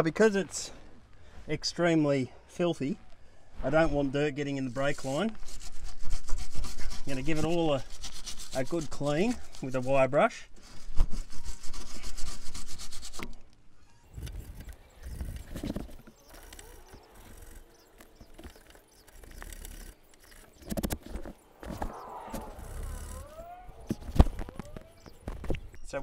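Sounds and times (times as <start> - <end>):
wire brush scraping metal: 4.8 - 10.0.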